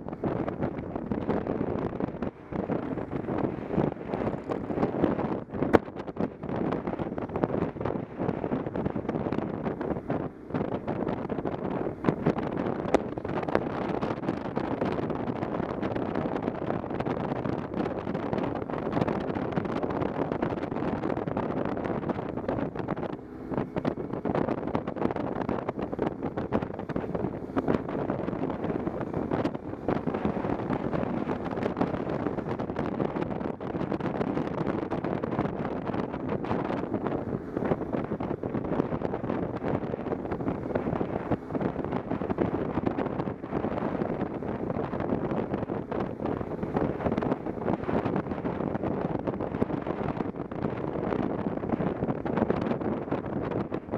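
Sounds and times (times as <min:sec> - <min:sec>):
motorcycle engine running: 0:00.0 - 0:53.9
wind buffeting microphone: 0:00.0 - 0:53.9.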